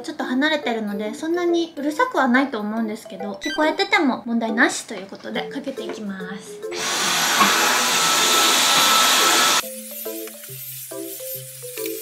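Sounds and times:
background music: 0:00.0 - 0:12.0
vacuum cleaner whining: 0:06.7 - 0:09.6.

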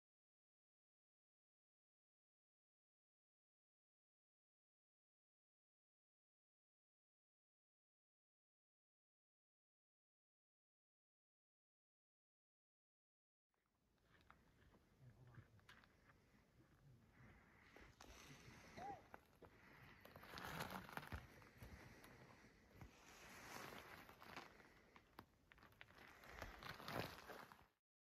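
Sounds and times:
rustling noise: 0:19.9 - 0:27.7.

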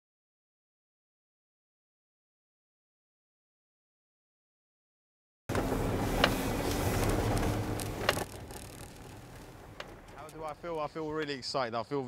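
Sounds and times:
car engine and road rumble: 0:05.5 - 0:11.1
sharp clicks: 0:07.0 - 0:10.8.

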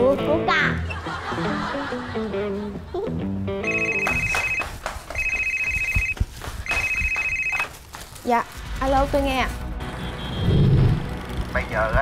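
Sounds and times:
telephone electronic ringing: 0:03.6 - 0:07.7.

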